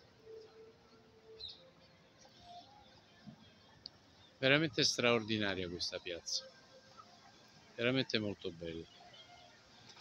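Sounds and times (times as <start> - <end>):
faint outdoor ambience: 0.0 - 10.0
faint bird chirp: 1.2 - 1.7.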